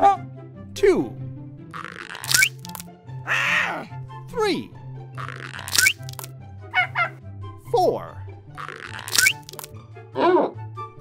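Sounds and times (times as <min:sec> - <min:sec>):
cartoon eggs cracking: 0:01.8 - 0:02.8, 0:05.2 - 0:06.3, 0:08.6 - 0:09.7.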